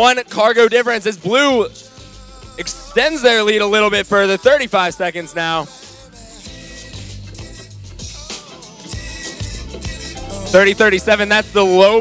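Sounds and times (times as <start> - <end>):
background music with bass and beat: 0.0 - 12.0.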